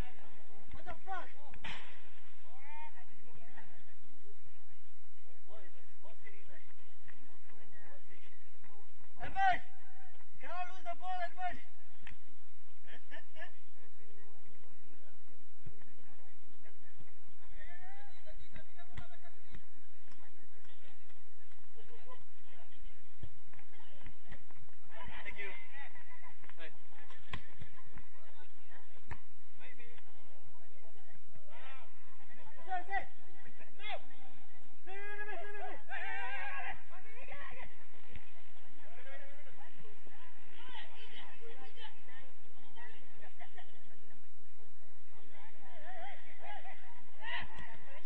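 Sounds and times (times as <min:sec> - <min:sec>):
players shouting: 0:34.8 - 0:39.1.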